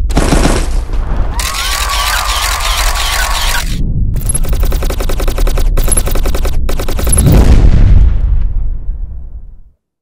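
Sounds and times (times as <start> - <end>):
rapid machine-gun fire: 0.0 - 0.8, 1.4 - 7.5
low rumble: 3.6 - 9.8.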